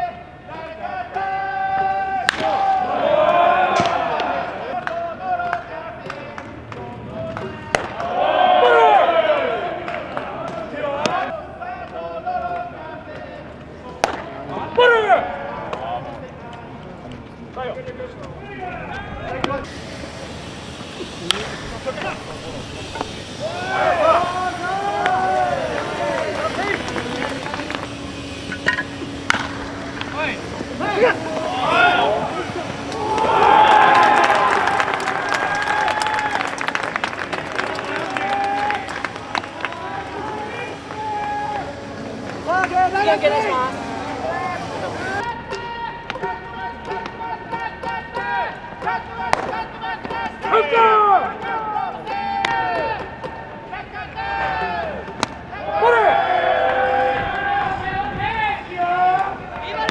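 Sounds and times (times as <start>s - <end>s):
players shouting calls: 0.0s - 16.8s, 17.6s - 20.4s, 21.0s - 59.9s.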